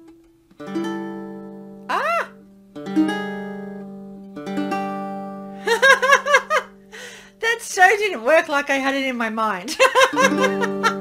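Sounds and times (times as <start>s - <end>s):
ukulele strumming chords: 0.0s - 7.4s, 9.8s - 11.0s
person giggling: 5.6s - 6.8s, 9.7s - 11.0s.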